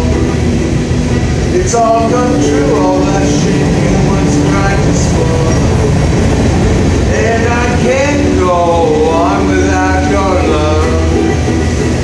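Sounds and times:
guitar strumming: 0:00.0 - 0:12.0
train rumbling past: 0:00.0 - 0:12.0
man singing: 0:01.4 - 0:06.4, 0:07.1 - 0:11.6.

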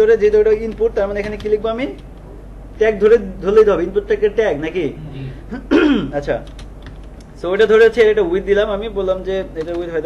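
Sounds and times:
computer keyboard typing: 0:00.1 - 0:02.1, 0:06.4 - 0:07.3, 0:09.6 - 0:10.0.

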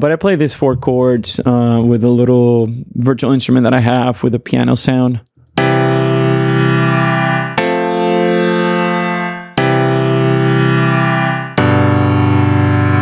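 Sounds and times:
piano chords: 0:05.4 - 0:13.0.

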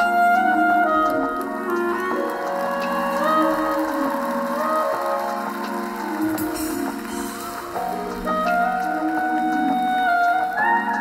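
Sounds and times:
band accompaniment: 0:00.0 - 0:11.0
clarinet solo melody: 0:00.0 - 0:11.0.

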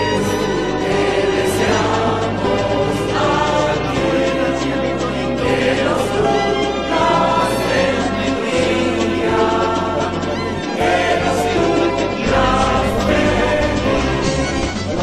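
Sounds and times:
bass line: 0:00.0 - 0:15.0
choir singing: 0:00.0 - 0:15.0.

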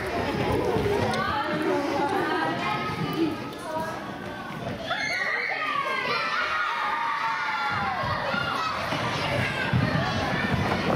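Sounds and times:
children shouting and cheering: 0:04.6 - 0:10.9.

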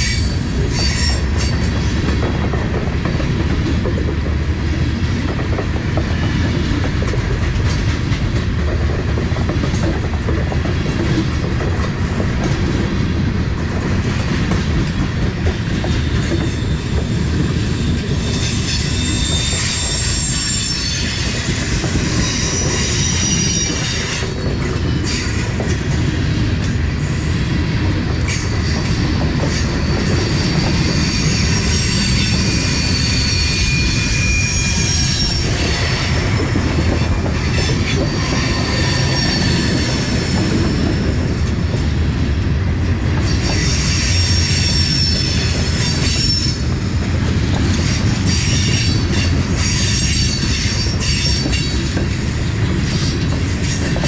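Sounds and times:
steel wheels rumbling on rail: 0:00.0 - 0:54.0
wheel clacks and knocks: 0:01.5 - 0:17.2
high-pitched wheel squeal: 0:18.3 - 0:24.1, 0:29.5 - 0:40.9, 0:43.4 - 0:46.6.

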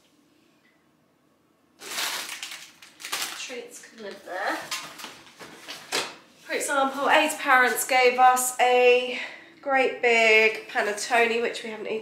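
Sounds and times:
plastic snack packet crinkling: 0:01.8 - 0:05.2.

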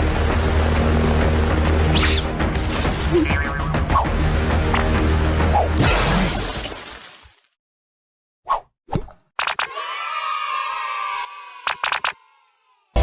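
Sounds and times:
cartoon sound effects and music: 0:03.0 - 0:04.2.

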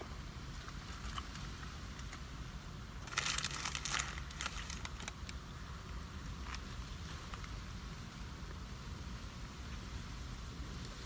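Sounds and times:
low steady rumble: 0:00.0 - 0:11.0
sandwich wrapper crinkling: 0:03.0 - 0:05.3.

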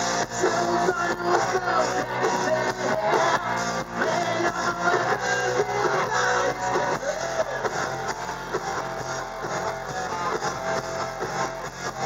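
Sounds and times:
electric guitars: 0:00.0 - 0:12.0
steady drum beat: 0:00.0 - 0:12.0.

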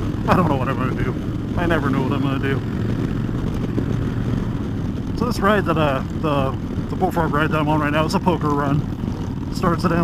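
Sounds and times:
motorcycle engine cruising: 0:00.0 - 0:10.0
wind rushing: 0:00.0 - 0:10.0.

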